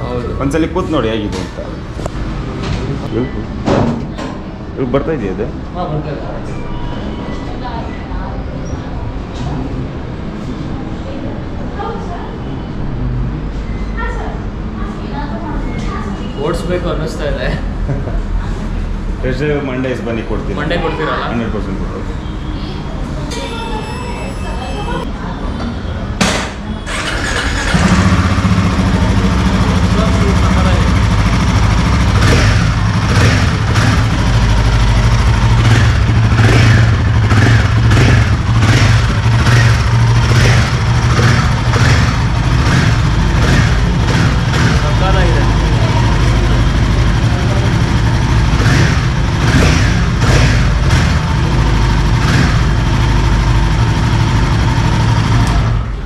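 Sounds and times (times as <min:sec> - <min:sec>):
motorcycle engine starting and running: 0:26.2 - 0:56.0.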